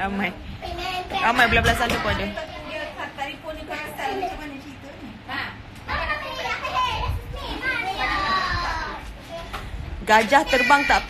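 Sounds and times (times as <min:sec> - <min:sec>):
children calling out: 0:05.9 - 0:09.0, 0:10.4 - 0:11.0.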